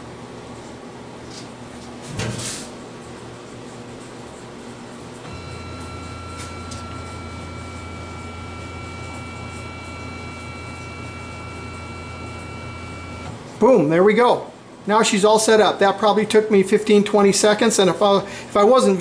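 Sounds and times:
machine low hum: 0:00.0 - 0:19.0
thin high machine whine: 0:05.2 - 0:13.4.

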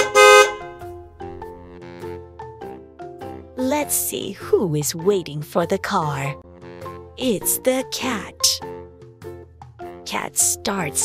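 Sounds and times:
cartoon car horn beeps: 0:00.0 - 0:00.8
light background music: 0:00.0 - 0:11.0.

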